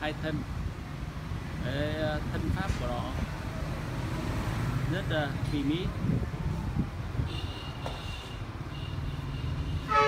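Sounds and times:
rumble of passing traffic: 0:00.0 - 0:10.0
vehicle horn: 0:07.3 - 0:10.0.

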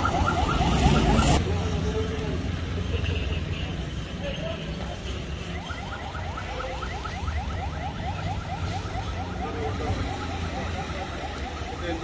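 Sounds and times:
low traffic rumble: 0:00.0 - 0:12.0.

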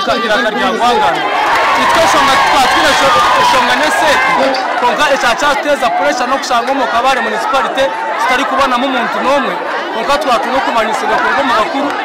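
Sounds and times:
man talking: 0:00.0 - 0:01.2, 0:01.8 - 0:12.0
overlapping voices: 0:00.0 - 0:12.0.

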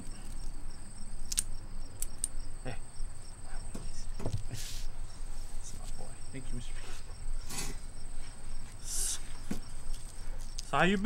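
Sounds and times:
crickets chirping: 0:00.0 - 0:11.0
sharp clicks: 0:01.3 - 0:02.4
small low knocks: 0:03.7 - 0:04.5.

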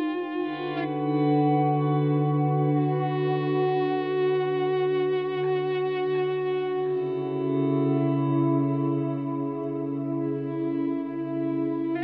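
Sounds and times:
ambient electric guitars: 0:00.0 - 0:12.0.

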